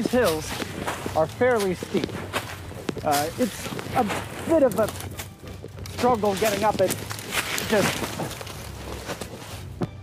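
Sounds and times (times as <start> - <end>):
footsteps crunching dry leaves: 0.0 - 9.8.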